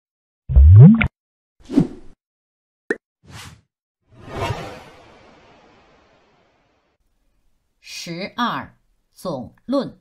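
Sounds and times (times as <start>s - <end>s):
synthetic bloop rising in pitch: 0.5s - 1.1s
whoosh: 4.1s - 7.0s.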